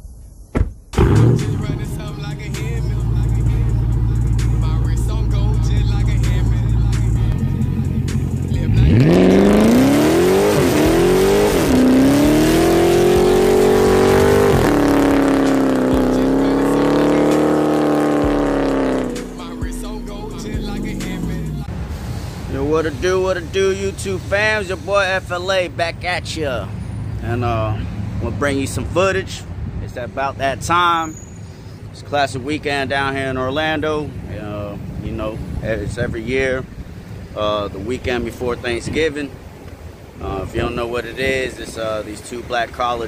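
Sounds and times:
car engine revving: 1.0s - 25.4s.

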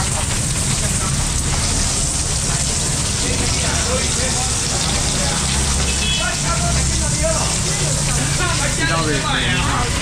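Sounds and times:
heavy rain pouring: 0.0s - 10.0s.

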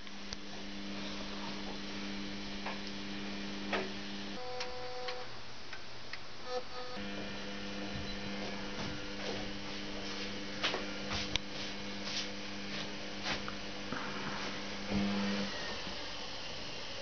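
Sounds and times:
washing machine hum: 0.0s - 4.4s, 7.0s - 17.0s.

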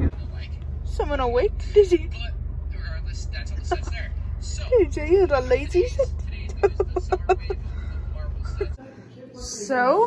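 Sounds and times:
car engine rumble from inside: 0.0s - 8.8s.

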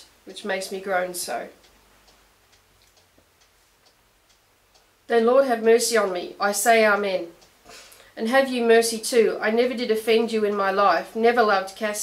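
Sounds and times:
faint ticking: 0.0s - 12.0s.

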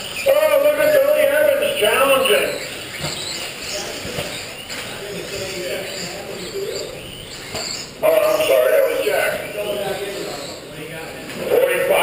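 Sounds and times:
indistinct voices echoing: 0.0s - 12.0s.

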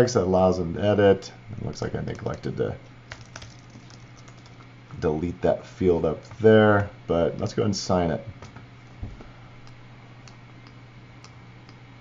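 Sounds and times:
faint low hum: 0.0s - 12.0s
keyboard typing: 3.1s - 4.6s.

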